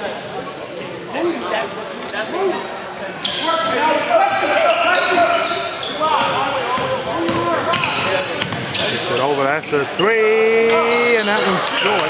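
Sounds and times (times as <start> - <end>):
people calling out: 3.2 - 8.8
basketball dribbling on court: 6.2 - 8.8.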